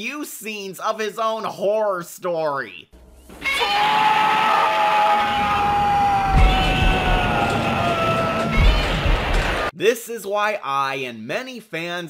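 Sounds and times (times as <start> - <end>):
man screaming: 3.4 - 9.1.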